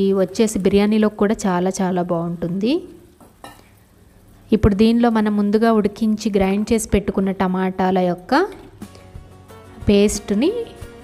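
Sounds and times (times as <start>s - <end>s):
woman speaking: 0.0s - 3.1s, 4.5s - 8.8s, 9.8s - 10.8s
curry sizzling in a pan: 0.0s - 9.8s.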